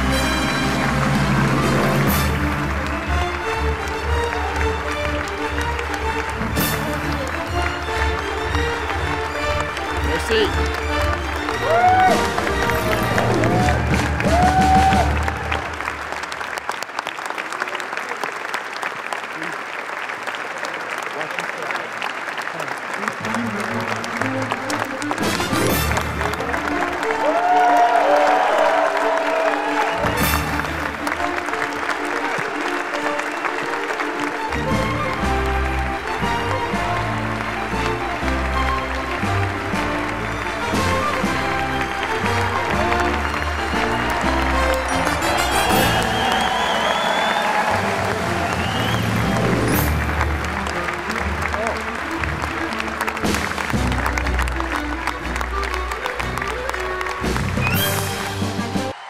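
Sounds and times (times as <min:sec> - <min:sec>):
music played through hall: 0:00.0 - 0:17.9, 0:22.0 - 0:59.0
audience applauding: 0:00.0 - 0:59.0.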